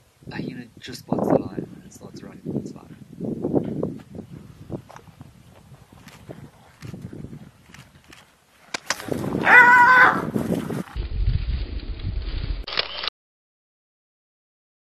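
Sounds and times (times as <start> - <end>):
rough low rumbling: 9.0 - 12.7
high wavering animal cry: 9.4 - 10.3.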